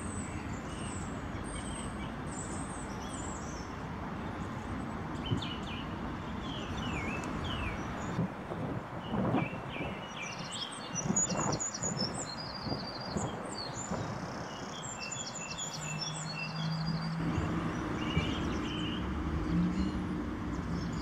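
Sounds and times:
songbirds chirping and trilling: 0.0s - 21.0s.

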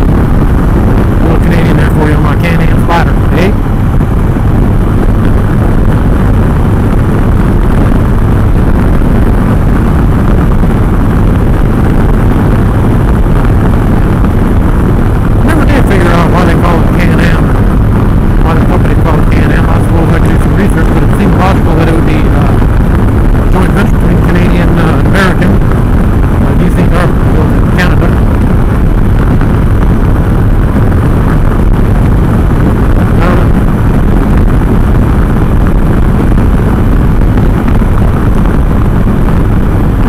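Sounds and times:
motorcycle engine running: 0.0s - 40.0s
road noise: 0.0s - 40.0s
wind rush on microphone: 0.0s - 40.0s.

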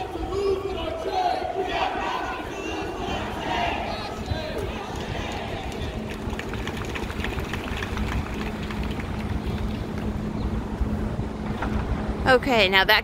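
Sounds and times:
distant voices: 0.0s - 13.0s
low rumble of traffic: 0.0s - 13.0s
steady low hum: 0.0s - 13.0s.

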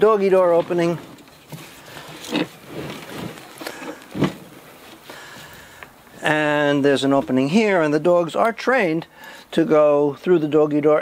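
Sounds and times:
wooden box scraping on deck: 1.6s - 5.0s.

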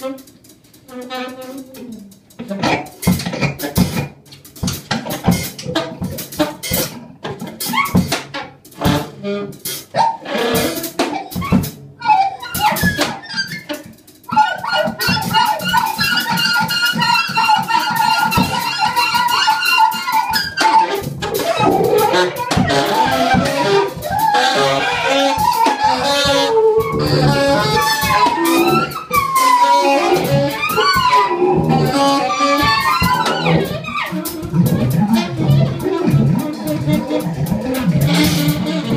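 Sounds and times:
drums hitting and rattling: 0.0s - 38.9s.

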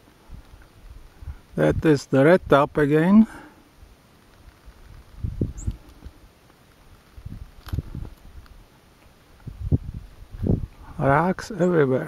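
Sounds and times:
low rumbles and thumps on microphone: 4.8s - 6.2s, 9.4s - 10.8s.

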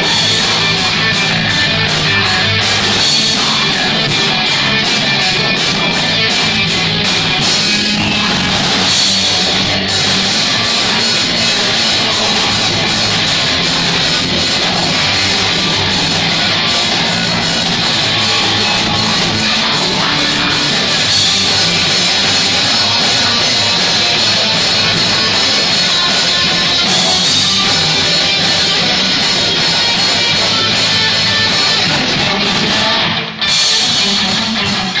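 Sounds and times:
drum kit beat: 0.0s - 35.0s
electric guitars: 0.0s - 35.0s.

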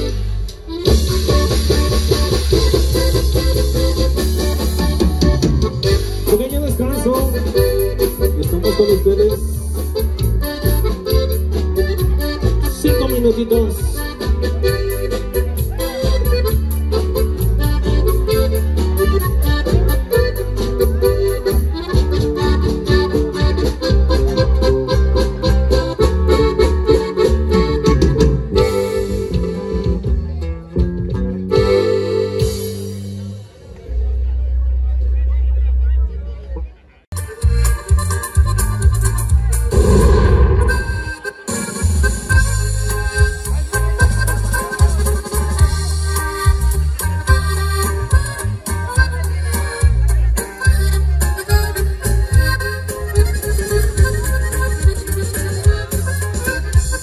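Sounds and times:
live band playing dance music: 0.0s - 34.0s, 37.1s - 57.0s
accordion: 0.0s - 34.2s, 35.2s - 57.0s.

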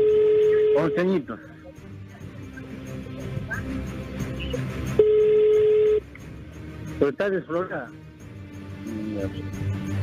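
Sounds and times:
steady telephone tone: 0.0s - 1.0s, 5.0s - 6.0s
faint background music: 0.0s - 10.0s.

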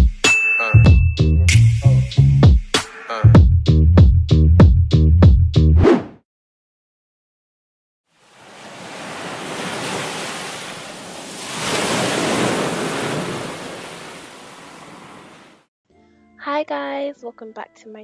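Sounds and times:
ocean waves on a beach: 8.1s - 15.7s.

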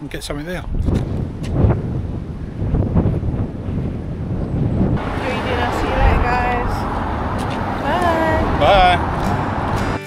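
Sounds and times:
wind rumble: 0.1s - 10.0s
traffic noise: 4.0s - 10.0s.

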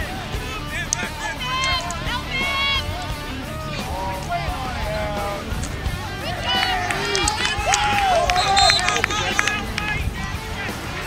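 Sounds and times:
people shouting outdoors: 0.0s - 11.0s
sharp clicks: 0.8s - 2.1s, 6.6s - 9.9s.

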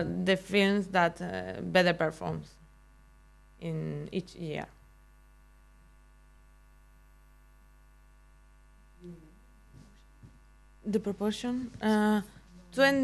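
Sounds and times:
faint mains hum: 0.0s - 13.0s
person speaking: 9.0s - 10.0s, 10.8s - 13.0s.

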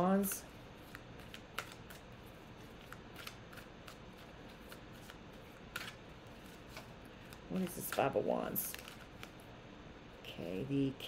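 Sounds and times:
cards being shuffled: 0.2s - 9.4s.

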